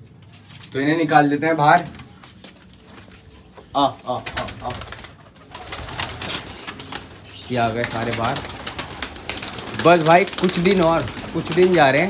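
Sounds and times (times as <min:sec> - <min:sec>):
pigeon wings clapping and fluttering: 0:04.1 - 0:12.0.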